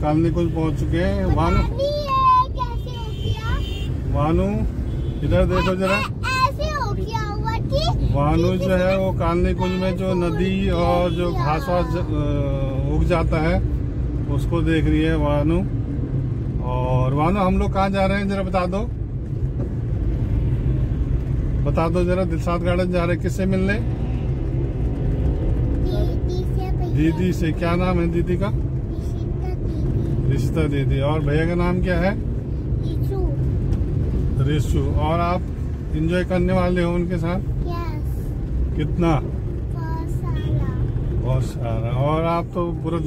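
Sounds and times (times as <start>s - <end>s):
car cabin road rumble: 0.0s - 43.0s.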